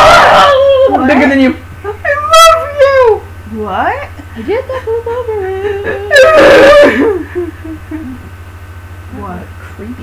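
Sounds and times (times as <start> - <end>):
child squealing: 0.0 - 1.4, 6.1 - 7.1.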